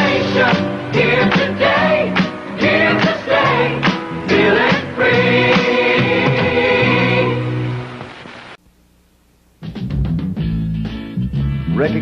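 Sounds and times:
choir singing a jingle: 0:00.0 - 0:07.6
instrumental backing music: 0:00.0 - 0:08.1, 0:09.6 - 0:12.0.

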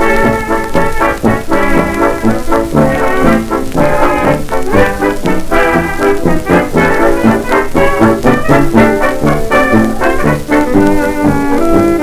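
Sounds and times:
dance orchestra with brass: 0:00.0 - 0:12.0.

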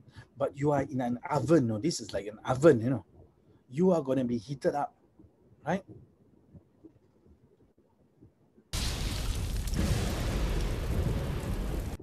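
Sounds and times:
dense rumble and hiss: 0:08.8 - 0:12.0.

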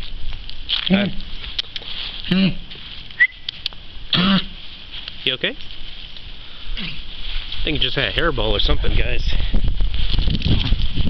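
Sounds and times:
dog coughing and hacking: 0:04.1 - 0:04.6.

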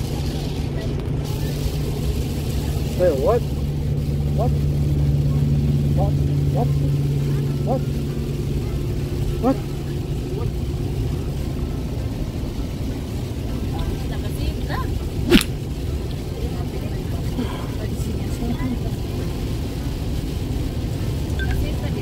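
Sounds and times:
car engine and tyres on wet road: 0:00.0 - 0:22.0
rain hissing on glass: 0:00.0 - 0:22.0.

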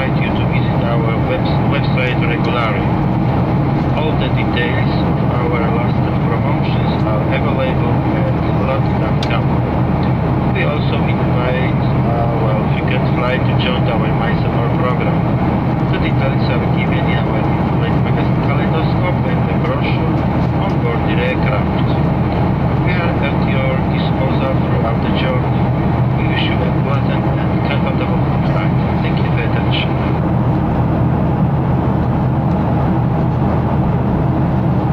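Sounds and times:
jet engine drone in cabin: 0:00.0 - 0:34.9
voices talking quietly: 0:10.6 - 0:15.2.

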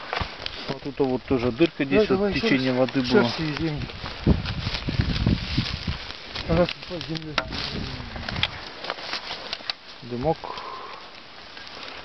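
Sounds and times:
dry grass crackling: 0:00.0 - 0:12.0
boots stamping on earth: 0:02.6 - 0:10.6.

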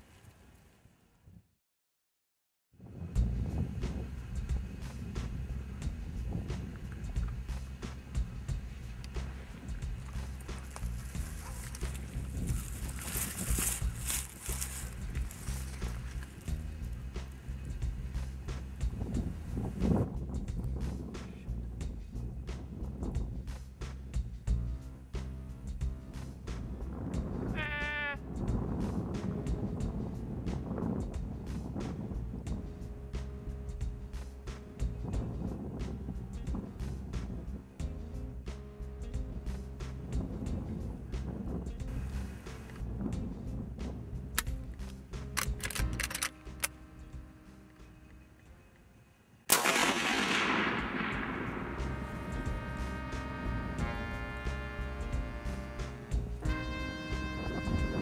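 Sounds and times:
background music: 0:03.1 - 0:58.0
rifle shot with echo: 0:49.5 - 0:52.0.

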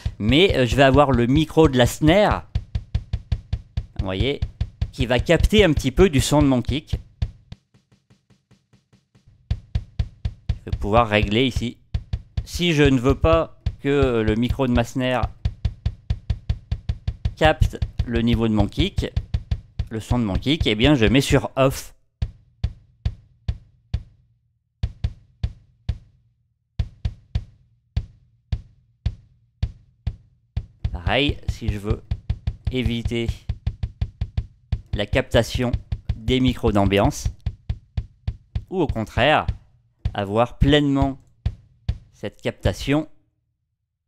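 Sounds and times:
drum kit playing: 0:00.0 - 0:24.1, 0:26.8 - 0:42.9.

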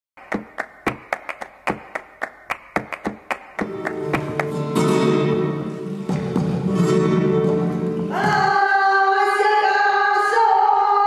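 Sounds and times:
rhythmic hand claps: 0:00.2 - 0:05.0
flamenco guitar chord: 0:03.6 - 0:08.1.

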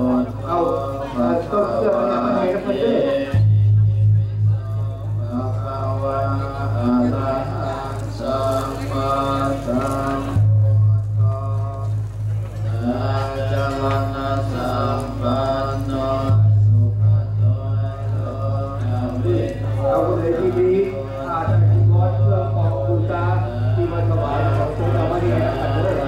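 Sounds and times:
chanting with music: 0:00.0 - 0:26.0
low pulsing drone: 0:00.0 - 0:26.0.

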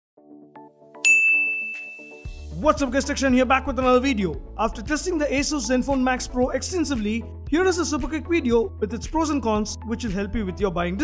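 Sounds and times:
bright ringing ding: 0:01.0 - 0:02.3.

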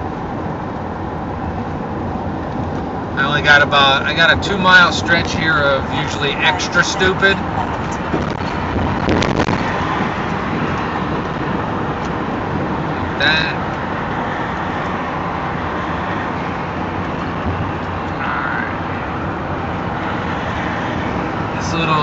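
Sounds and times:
road and engine noise: 0:00.0 - 0:22.0.

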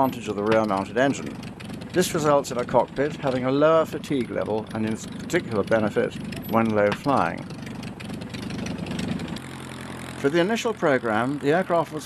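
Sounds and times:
propeller aircraft engine running: 0:00.0 - 0:12.0.

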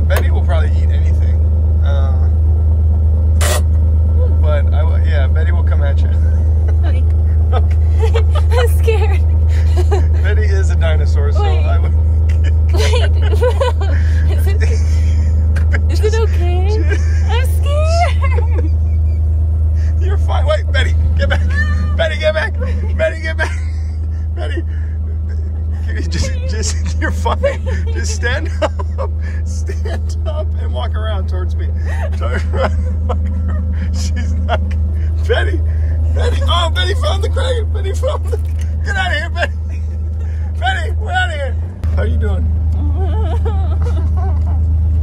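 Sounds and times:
truck engine idling: 0:00.0 - 0:45.0
people's voices: 0:03.4 - 0:19.1, 0:19.8 - 0:44.8.

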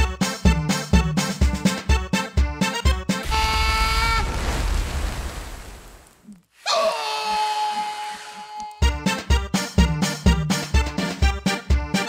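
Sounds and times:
rushing hiss with low rumble: 0:03.5 - 0:06.2.

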